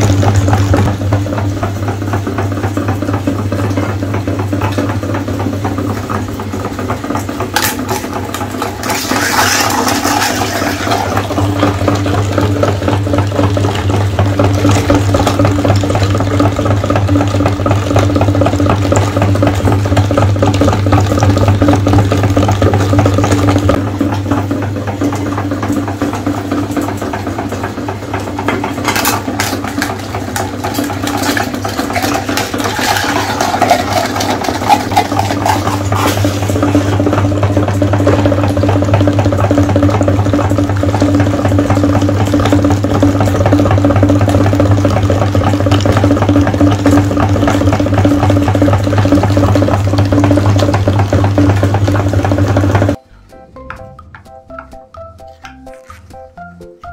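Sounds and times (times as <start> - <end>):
meat grinder humming: 0.0 - 56.9
eggs cracking and crunching: 54.6 - 56.4.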